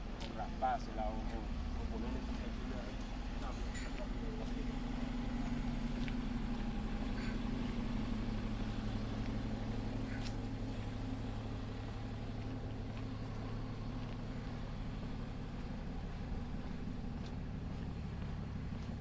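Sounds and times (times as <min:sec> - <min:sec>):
road vehicle engine hum: 0:00.0 - 0:19.0.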